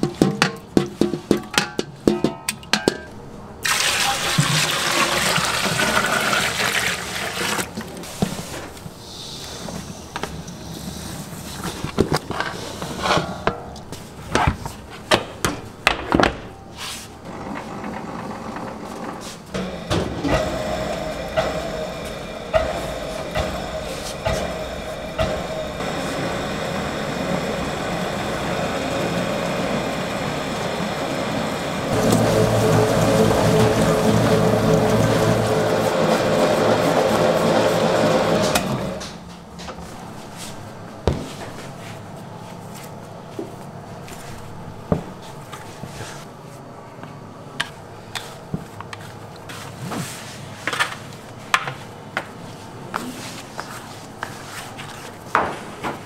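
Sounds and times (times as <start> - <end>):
dough mixer running: 19.6 - 39.1.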